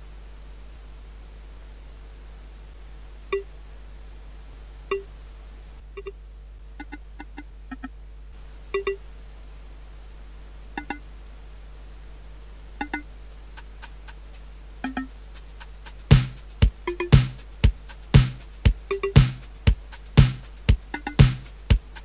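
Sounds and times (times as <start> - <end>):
faint hum and hiss: 0.0 - 22.0
synth wood-block knocks: 12.8 - 13.1, 14.8 - 15.1, 16.1 - 21.8.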